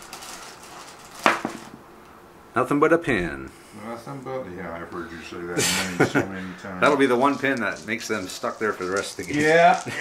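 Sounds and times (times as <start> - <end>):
dice rattling: 7.0 - 10.0.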